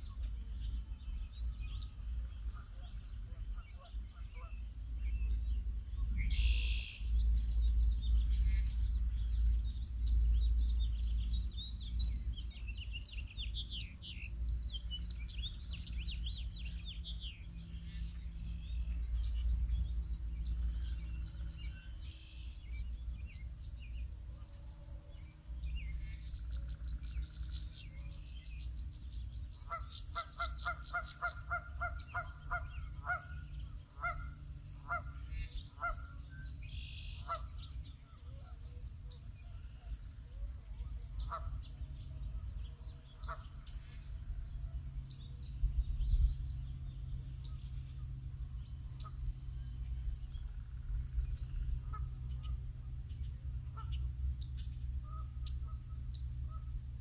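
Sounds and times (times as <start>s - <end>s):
small birds chirping: 0.0s - 57.0s
steady low rumble: 0.0s - 57.0s
geese honking: 29.6s - 36.2s, 36.8s - 38.7s, 41.2s - 41.7s, 43.1s - 44.1s, 51.8s - 52.6s, 53.6s - 54.1s.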